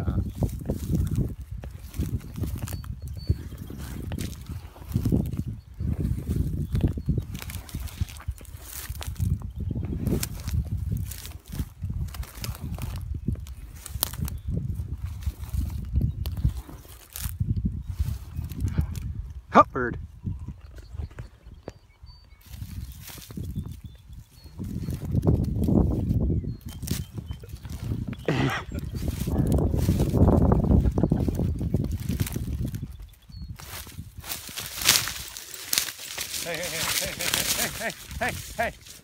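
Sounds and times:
footsteps crunching dry grass: 0.0s - 19.2s, 20.7s - 39.0s
wind rumble on microphone: 0.0s - 39.0s.

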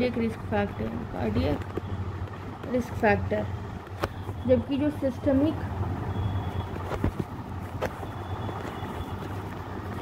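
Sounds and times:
low background rumble and hum: 0.0s - 10.0s.

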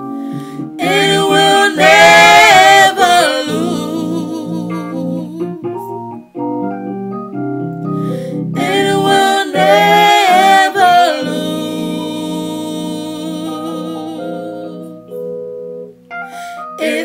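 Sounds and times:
sustained keyboard chords: 0.0s - 17.0s
gospel singing: 0.6s - 5.7s, 8.6s - 15.3s, 16.8s - 17.0s.

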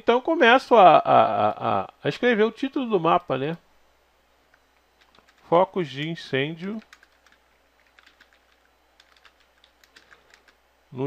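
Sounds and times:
keyboard typing: 4.5s - 5.6s, 6.6s - 10.6s.

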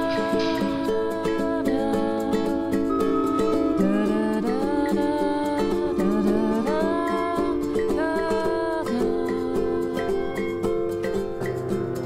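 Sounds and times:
gliding wordless melody: 0.0s - 12.0s
plucked strings: 0.0s - 12.0s.

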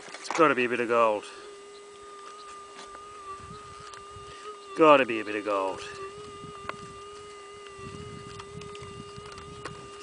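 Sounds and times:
faint scraping of soil and stones: 0.0s - 3.0s
metal detector steady tone: 0.0s - 10.0s.

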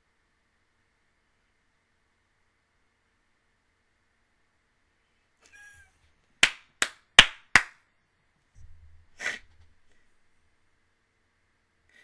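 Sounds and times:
sharp hand claps: 6.4s - 7.8s.

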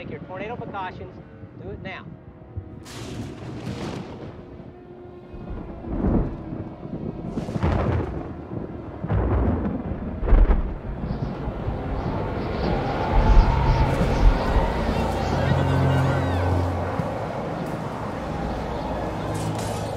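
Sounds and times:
wind: 0.0s - 19.9s
thunder rumbling: 2.3s - 19.6s
rain: 2.4s - 19.9s.

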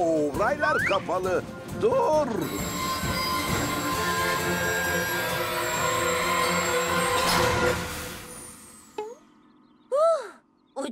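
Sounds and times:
music: 0.0s - 8.8s
train wheels skidding on rails: 2.4s - 8.7s
metallic brake squeal: 2.4s - 9.0s.

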